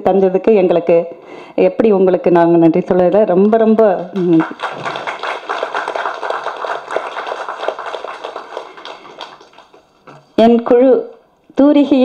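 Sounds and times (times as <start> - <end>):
audience applause: 4.2 - 10.0.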